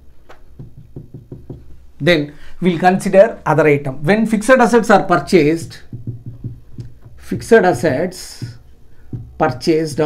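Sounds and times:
marker knocking on whiteboard: 0.3 - 1.8, 5.2 - 10.0.

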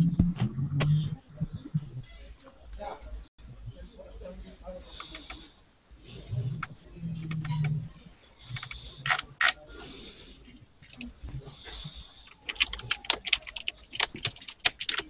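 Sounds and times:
computer keyboard typing: 8.5 - 9.6, 12.2 - 15.0.

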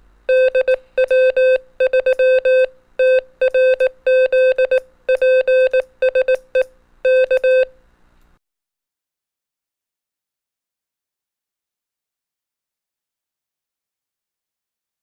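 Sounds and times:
morse code beeping: 0.3 - 7.7.

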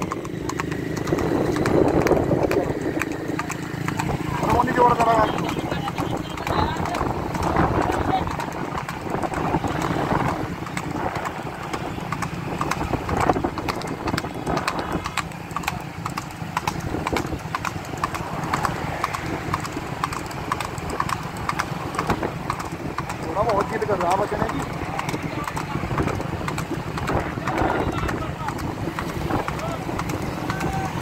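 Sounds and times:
horse hooves on asphalt: 0.0 - 31.0.

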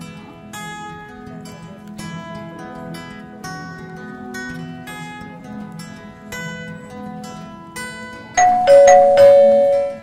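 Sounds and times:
acoustic guitar background music: 0.0 - 10.0
two-note ding-dong chime: 8.4 - 10.0.

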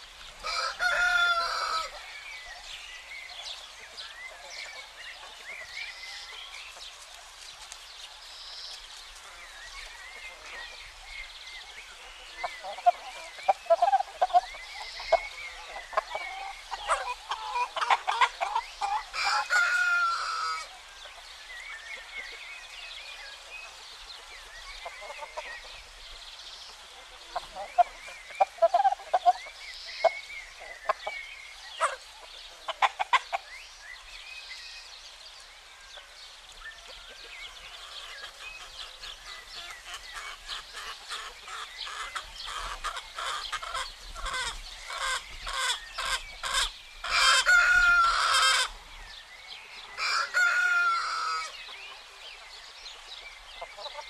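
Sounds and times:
chickens clucking: 0.0 - 7.8, 8.7 - 33.6, 36.8 - 49.0, 49.8 - 54.0
rooster crowing: 0.4 - 2.0, 19.1 - 20.7, 50.0 - 51.5.

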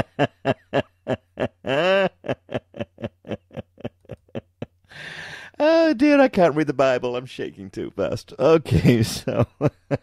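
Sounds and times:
man laughing hard: 0.0 - 5.0, 8.7 - 10.0
gasping breath: 4.8 - 5.6.

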